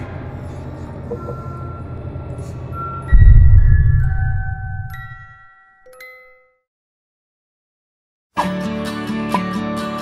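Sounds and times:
low rumbling drone: 0:03.1 - 0:05.3.

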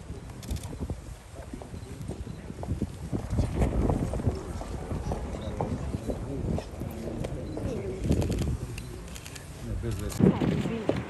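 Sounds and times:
crowd footsteps on hard ground: 0:00.0 - 0:11.0
murmuring voices: 0:00.0 - 0:11.0.

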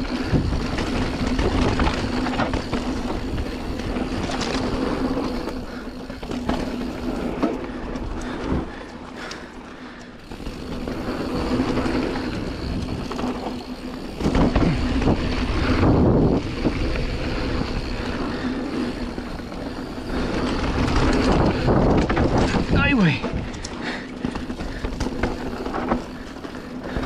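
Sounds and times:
wind rushing over microphone: 0:00.0 - 0:05.3, 0:10.3 - 0:23.7
bike tyres rolling and skidding on dirt: 0:00.0 - 0:27.0.

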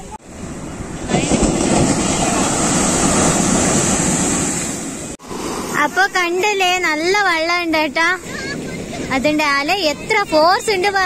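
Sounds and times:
surf breaking on sandy shore: 0:00.0 - 0:11.0.

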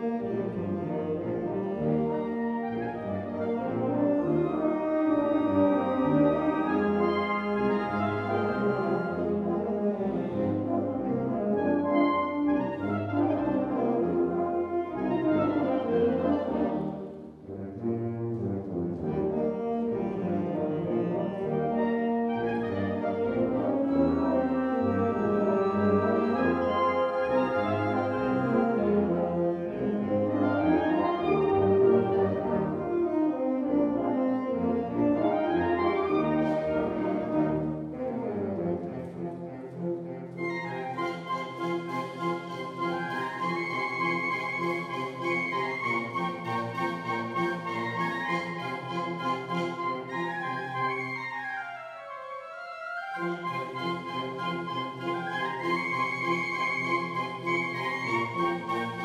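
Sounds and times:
wind band playing a march: 0:00.0 - 0:59.0.

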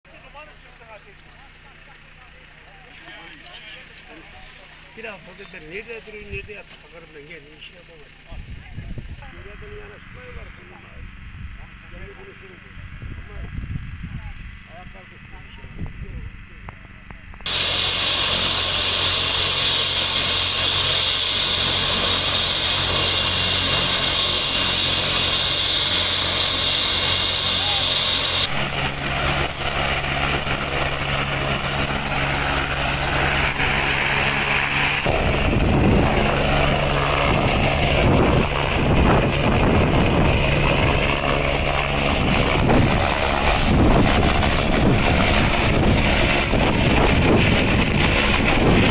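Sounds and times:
helicopter rotors and turbine: 0:00.1 - 0:48.9.

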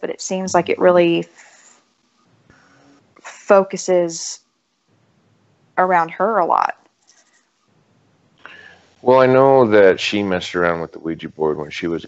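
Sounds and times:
soft rustling: 0:06.8 - 0:09.0.

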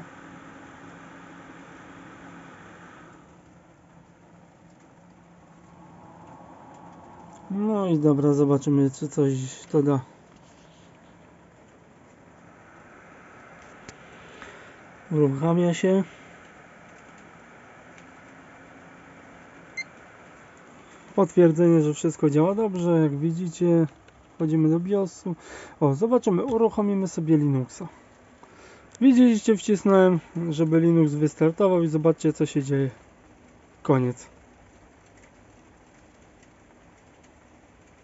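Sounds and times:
computer running noise: 0:00.0 - 0:38.0.

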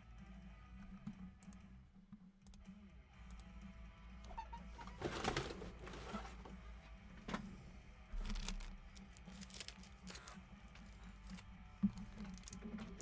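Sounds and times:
faint background music: 0:00.0 - 0:13.0.

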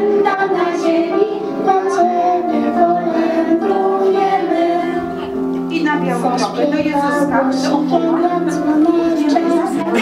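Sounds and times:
children singing: 0:00.0 - 0:05.3, 0:06.4 - 0:10.0
instrumental accompaniment: 0:00.0 - 0:10.0.

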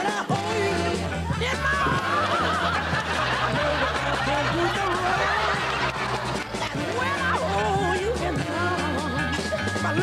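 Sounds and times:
backing song with bass line: 0:00.0 - 0:10.0
audience laughter: 0:01.7 - 0:08.4.

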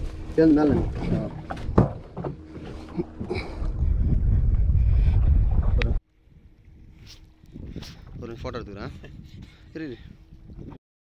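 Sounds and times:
wind buffeting microphone: 0:00.0 - 0:10.8
knocks on boat deck: 0:01.4 - 0:02.5.

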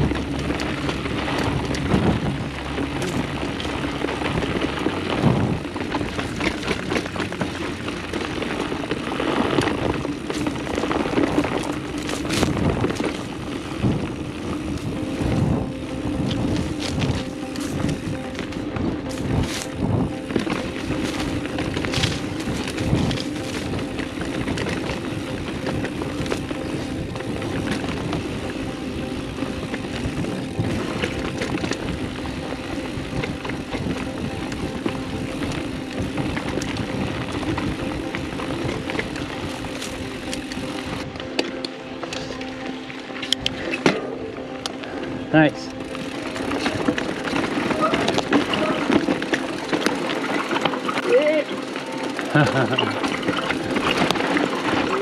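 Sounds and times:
wind on microphone: 0:00.0 - 0:07.4, 0:08.4 - 0:41.3
knocks and rattles over rocks: 0:00.0 - 0:14.0, 0:16.2 - 0:28.3, 0:45.9 - 0:55.0
bike tyres rumbling on trail: 0:00.0 - 0:55.0.

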